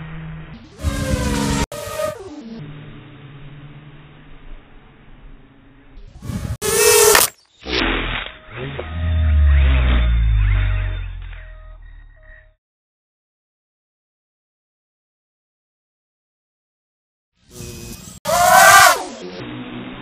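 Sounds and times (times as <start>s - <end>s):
quadcopter flying: 0.0s - 11.2s, 17.4s - 20.0s.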